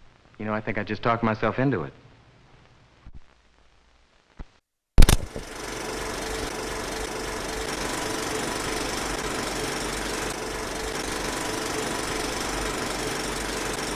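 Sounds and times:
sharp click: 0:05.0 - 0:05.4
film projector running: 0:05.0 - 0:13.9.

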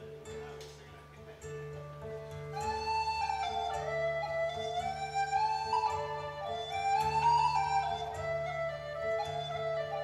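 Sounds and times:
classical acoustic guitar: 0:00.0 - 0:10.0
end-blown flute melody: 0:02.6 - 0:10.0.

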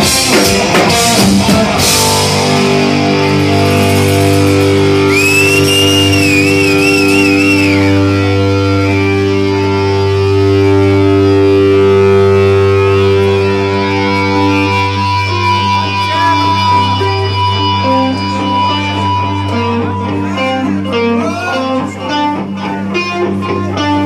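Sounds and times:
electric guitars sustained chord: 0:00.0 - 0:24.0
high wavering guitar note: 0:01.8 - 0:24.0.

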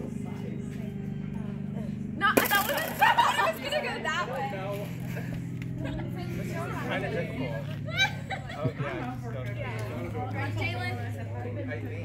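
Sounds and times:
flying disc smacking: 0:02.2 - 0:03.6.

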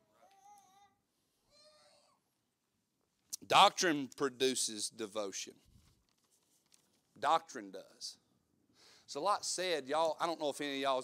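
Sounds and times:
faint high-pitched voice: 0:00.0 - 0:02.3.

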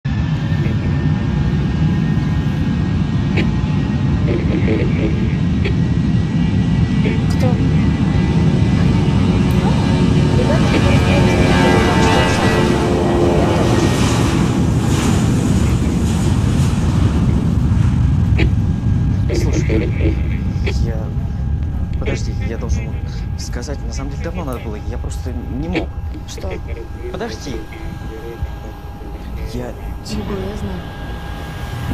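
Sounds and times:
high engine whine: 0:00.1 - 0:31.9
jet engines roaring: 0:00.1 - 0:31.9.

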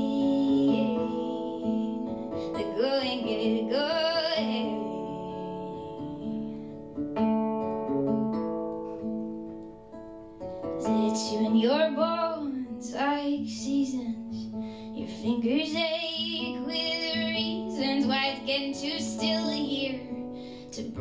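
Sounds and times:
woman singing: 0:00.0 - 0:06.7, 0:10.8 - 0:21.0
acoustic guitar chords: 0:00.0 - 0:21.0.

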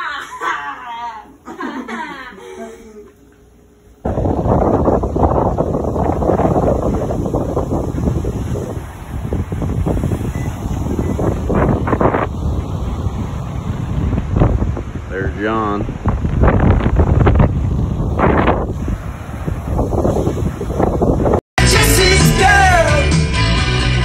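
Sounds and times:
surf breaking on beach: 0:04.0 - 0:21.4
wind buffeting microphone: 0:04.0 - 0:21.4.

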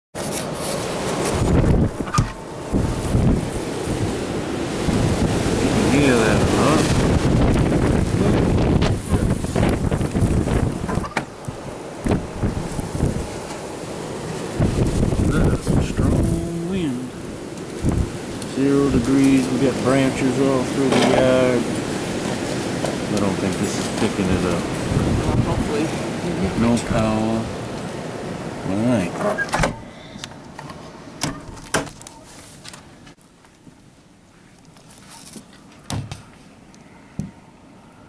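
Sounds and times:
storm wind buffeting microphone: 0:00.8 - 0:28.7.

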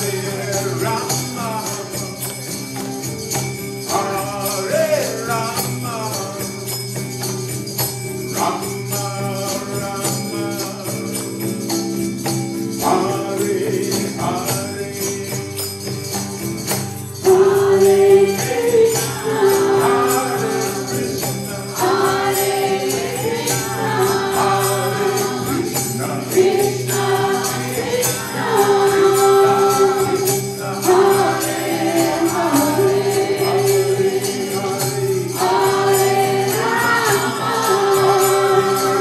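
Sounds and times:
jingling hand percussion: 0:00.0 - 0:39.0
voices chanting a held note: 0:17.3 - 0:39.0.

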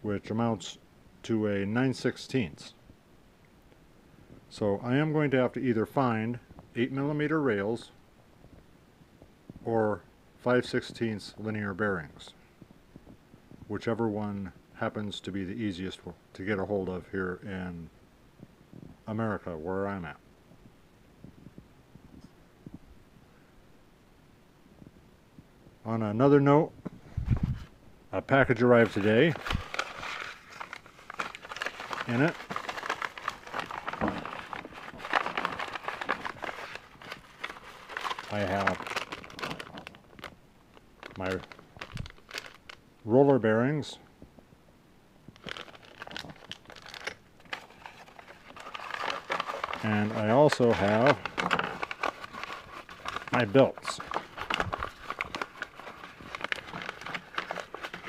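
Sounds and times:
crinkling and rustling: 0:26.8 - 0:42.8, 0:45.3 - 0:58.0.

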